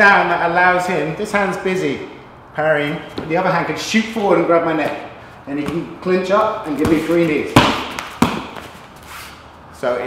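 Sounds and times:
knee striking a pad: 4.8 - 6.0, 6.7 - 8.7.

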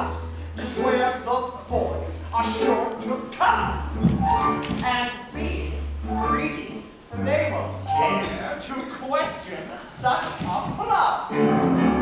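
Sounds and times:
backing music: 0.0 - 9.4, 10.8 - 12.0
voices on stage: 4.6 - 11.3.

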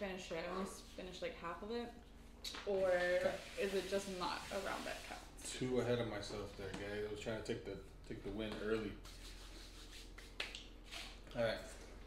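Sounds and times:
sharp hand slap: 10.2 - 10.7.

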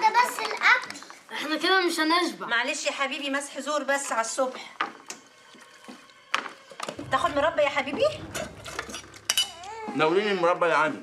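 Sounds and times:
cutlery clinking on dishes: 8.4 - 10.0.

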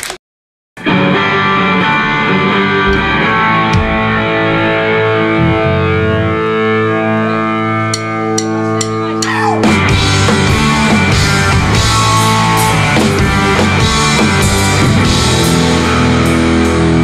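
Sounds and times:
electric guitar chords: 0.8 - 17.0
punk rock band with drums: 0.8 - 17.0.

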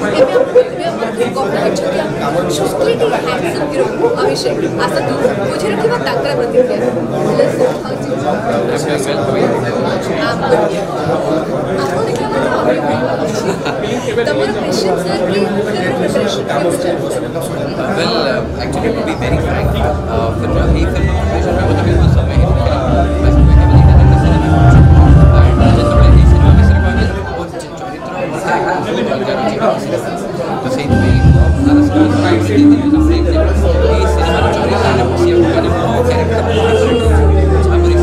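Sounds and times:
people chattering: 0.0 - 38.0
people talking at once: 0.0 - 38.0
person speaking: 18.0 - 27.7, 30.8 - 38.0.

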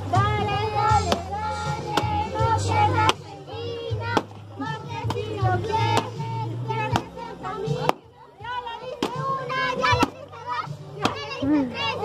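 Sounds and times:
children and adults calling out: 0.4 - 12.0
stick striking pinata: 4.1 - 4.4, 5.8 - 6.2, 6.9 - 7.1, 7.8 - 8.0, 9.0 - 10.2, 11.0 - 11.4.

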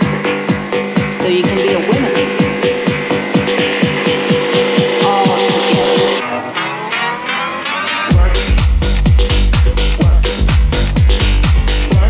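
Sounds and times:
fast kick drums: 0.0 - 6.2, 8.1 - 12.0
rising sweep: 0.0 - 6.6
electronic dance music: 0.0 - 12.0
steady high tone: 0.0 - 12.0.

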